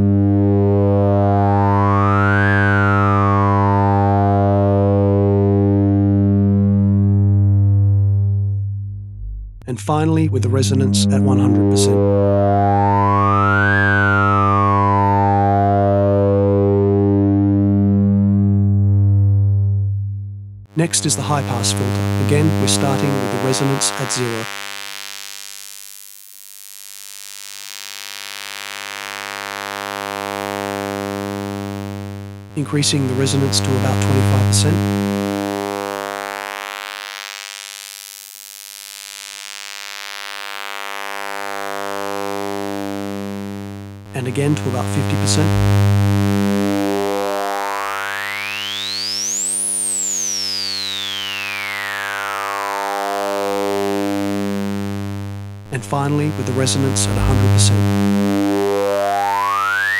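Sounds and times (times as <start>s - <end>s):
buzzy low synth tone sweeping down: 0.0s - 24.6s, 29.8s - 35.9s, 40.9s - 55.7s, 56.3s - 59.9s.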